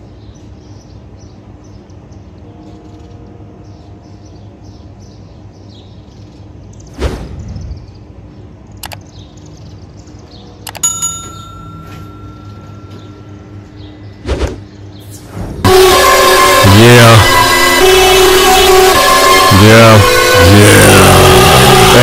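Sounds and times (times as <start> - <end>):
bell-like ding: 10.8 - 13.6.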